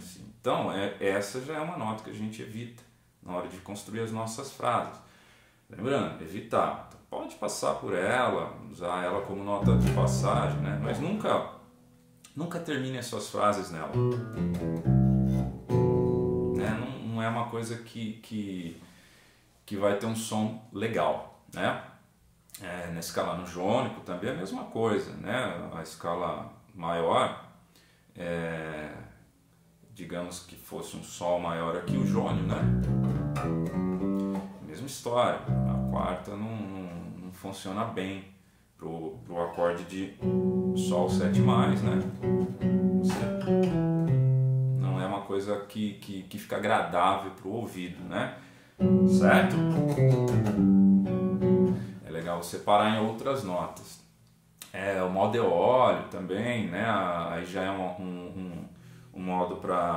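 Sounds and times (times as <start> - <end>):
plucked electric bass notes: 9.6 - 12.3, 13.8 - 17.0, 31.8 - 34.7, 35.3 - 36.3, 40.2 - 45.1, 48.8 - 51.9.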